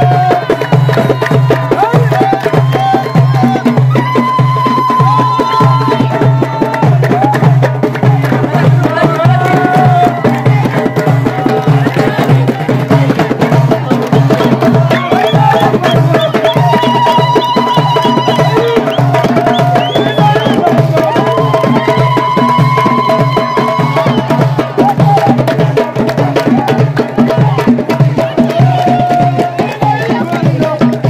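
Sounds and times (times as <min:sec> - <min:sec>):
frame drums beaten: 0:00.0 - 0:31.0
voices singing: 0:00.0 - 0:31.0.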